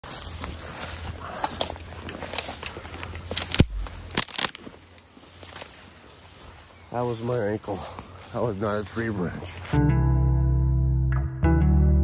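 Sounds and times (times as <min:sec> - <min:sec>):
footsteps through grass and brush: 0:00.0 - 0:09.8
twigs crackling: 0:00.0 - 0:09.8
sharp crack with thump: 0:03.4 - 0:04.6.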